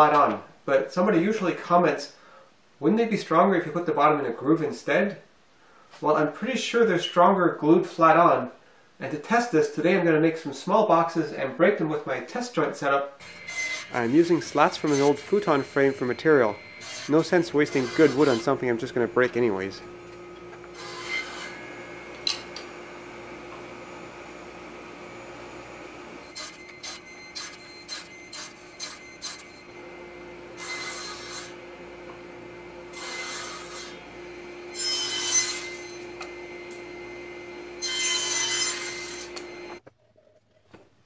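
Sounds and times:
saw cutting through wood: 0:13.2 - 0:39.8
table saw humming: 0:13.2 - 0:39.8.

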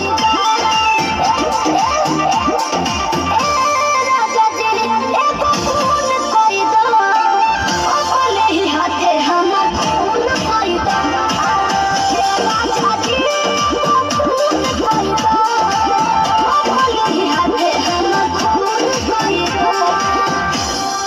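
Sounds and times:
dance music with deep bass beat: 0:00.0 - 0:21.0.

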